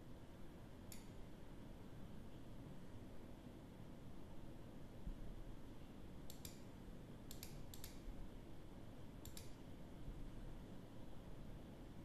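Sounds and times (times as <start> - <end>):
low room hum: 0.0 - 12.0
computer mouse clicks: 0.9 - 1.2, 6.2 - 6.7, 7.3 - 8.1, 9.2 - 9.6.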